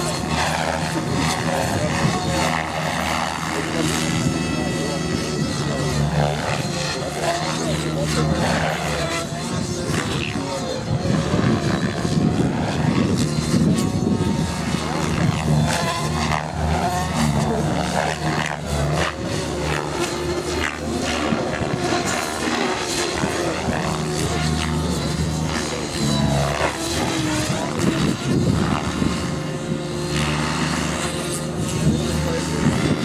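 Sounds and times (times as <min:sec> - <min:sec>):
model helicopter rotor drone: 0:00.0 - 0:33.0.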